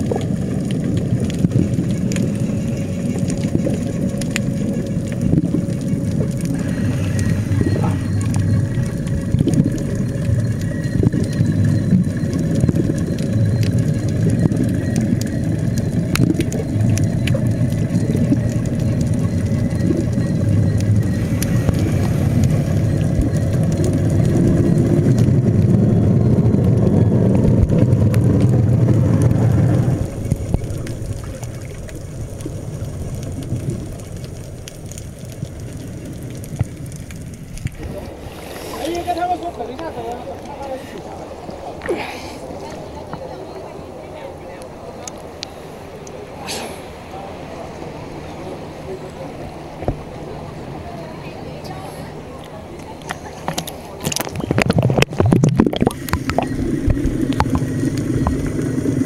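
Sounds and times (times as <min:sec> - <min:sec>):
clicks and crackles: 0:00.0 - 0:38.2, 0:44.6 - 0:46.6, 0:52.4 - 0:59.0
faint steady whine: 0:00.0 - 0:59.0
underwater low rumble: 0:00.0 - 0:59.0.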